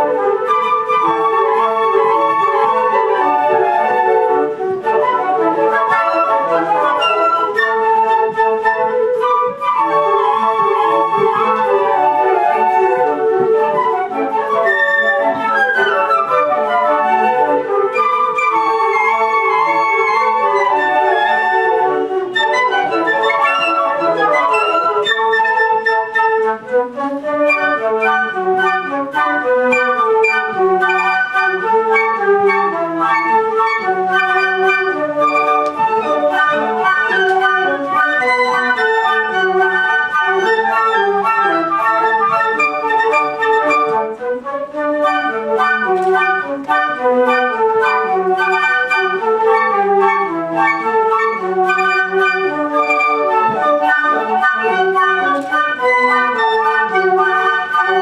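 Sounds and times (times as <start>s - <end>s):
flute ensemble playing a march: 0.0s - 58.0s.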